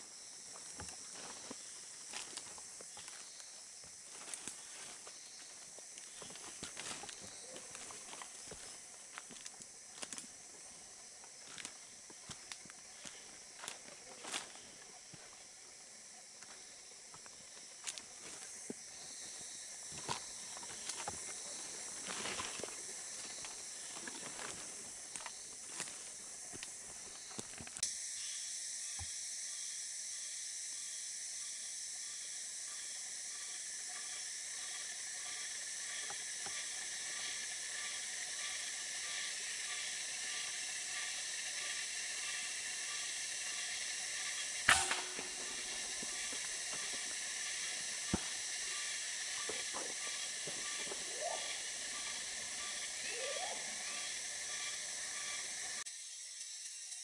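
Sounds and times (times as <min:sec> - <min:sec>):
insects droning: 0:00.0 - 0:57.0
footsteps through undergrowth: 0:00.4 - 0:15.6, 0:16.4 - 0:27.8, 0:44.7 - 0:52.9
faint pulsing call: 0:36.6 - 0:55.8.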